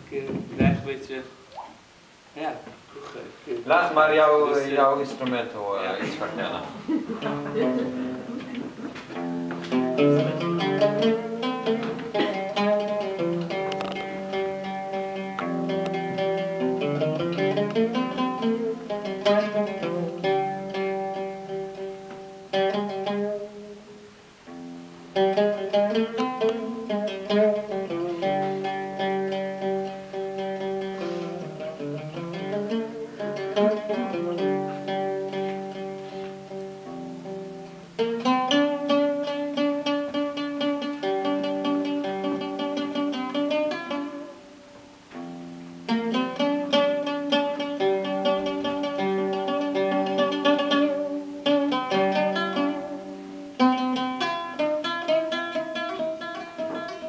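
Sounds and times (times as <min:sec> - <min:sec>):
solo oud playing: 0:03.6 - 0:57.0.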